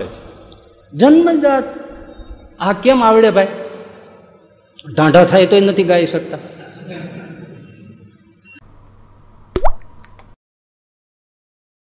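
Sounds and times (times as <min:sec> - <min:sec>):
sharp pop: 0:09.6 - 0:09.9.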